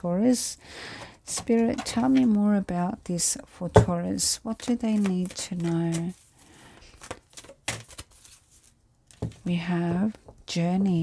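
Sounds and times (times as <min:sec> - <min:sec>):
cards being shuffled: 0:04.5 - 0:09.5.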